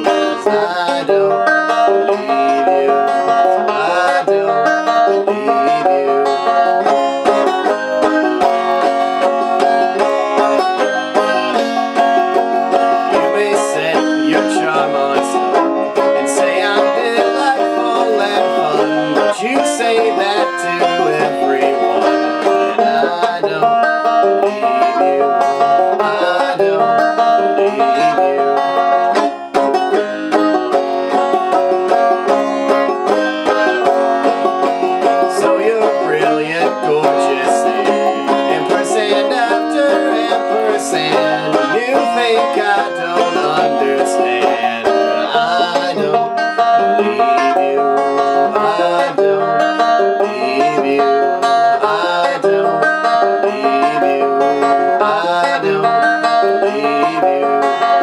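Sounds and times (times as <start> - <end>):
banjo playing chords: 0.0 - 58.0.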